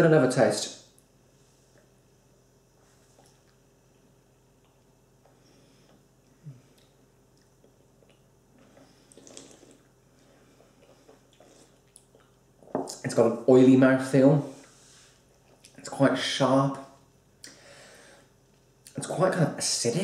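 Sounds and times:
wet mouth sounds: 0:06.4 - 0:10.0, 0:10.6 - 0:13.0.

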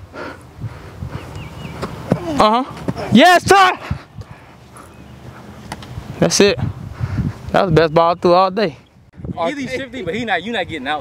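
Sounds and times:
wind rumble on microphone: 0:00.5 - 0:01.8, 0:05.8 - 0:08.3, 0:08.9 - 0:11.0.

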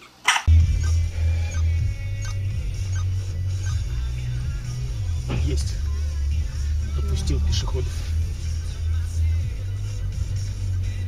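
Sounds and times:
background music with heavy bass: 0:00.5 - 0:11.0.

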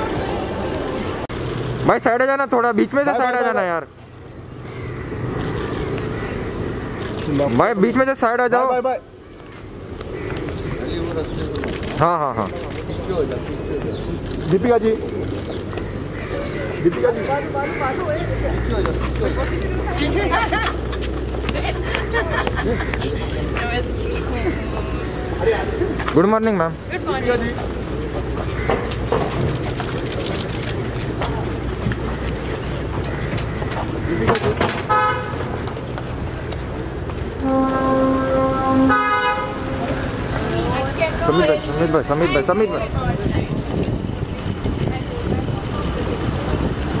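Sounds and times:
low rumble of traffic: 0:00.0 - 0:47.0
people talking and calling out: 0:00.0 - 0:47.0
wind buffeting microphone: 0:40.0 - 0:47.0.

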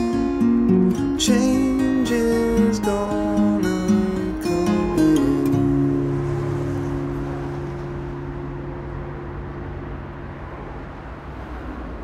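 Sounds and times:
guitar chord ringing out: 0:00.0 - 0:10.8
low rumble and hiss: 0:00.0 - 0:11.2.

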